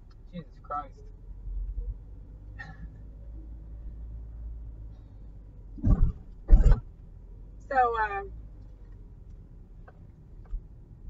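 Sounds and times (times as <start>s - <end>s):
car cabin rumble: 5.7s - 7.0s
throaty vocal bursts: 5.8s - 6.8s.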